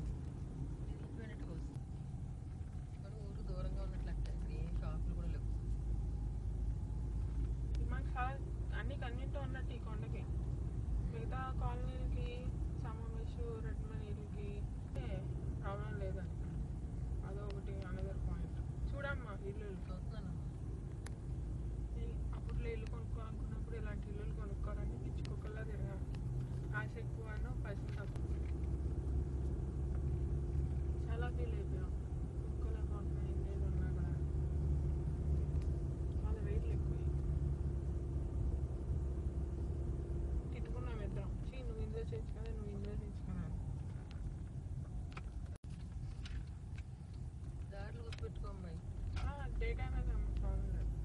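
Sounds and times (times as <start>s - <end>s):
car road and engine rumble: 0.0s - 51.0s.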